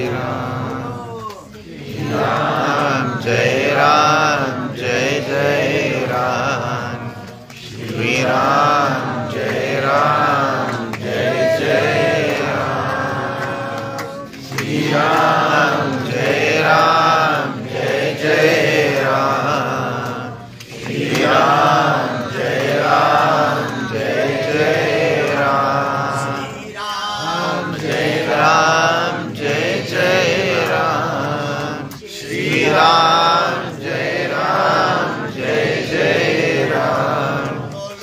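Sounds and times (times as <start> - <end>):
man singing devotional chant: 0.0 - 38.0.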